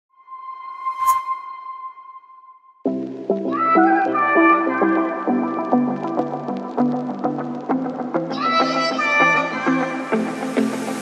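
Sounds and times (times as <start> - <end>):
whoosh: 0.6 - 1.8.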